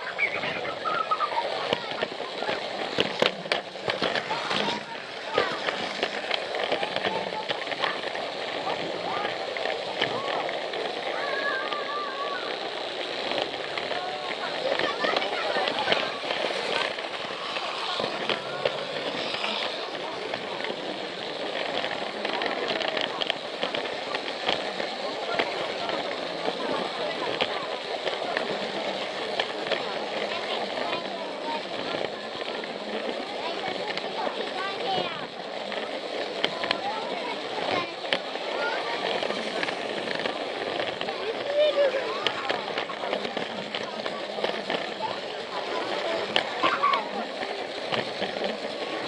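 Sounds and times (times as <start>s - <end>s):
crowd chatter: 0.0s - 49.0s
toy train clicking and rattling: 0.0s - 49.0s.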